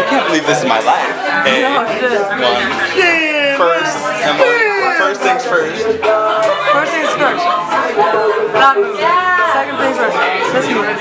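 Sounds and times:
people talking at once: 0:00.0 - 0:11.0
close voice talking: 0:00.4 - 0:06.0.

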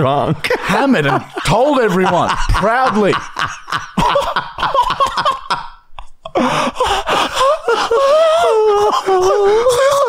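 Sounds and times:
men laughing hard: 0:00.0 - 0:10.0.

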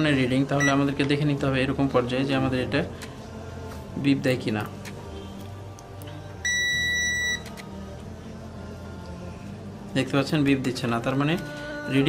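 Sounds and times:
low background music: 0:00.0 - 0:12.0
multimeter high-pitched beep: 0:06.4 - 0:07.5.

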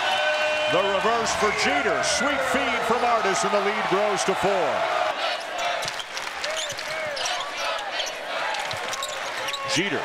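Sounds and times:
sneaker squeaks: 0:05.8 - 0:09.9.

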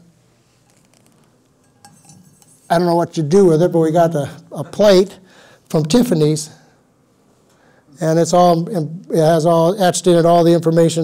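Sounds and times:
glass plate clinks: 0:01.6 - 0:02.7.

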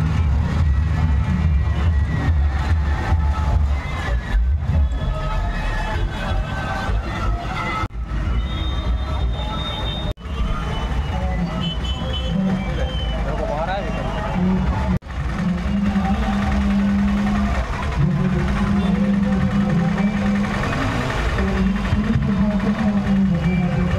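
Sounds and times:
auto-rickshaws and motorcycles running: 0:00.0 - 0:23.9
people's voices: 0:00.0 - 0:23.9.

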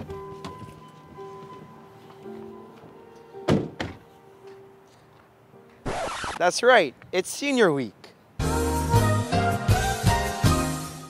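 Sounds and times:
background music: 0:00.0 - 0:06.2, 0:08.4 - 0:11.0
car doors slamming shut: 0:03.5 - 0:04.0.

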